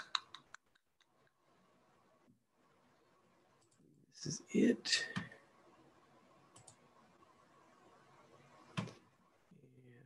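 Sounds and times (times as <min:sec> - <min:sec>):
faint room noise: 0:00.0 - 0:10.0
computer mouse clicks: 0:03.6 - 0:03.8, 0:06.5 - 0:06.8.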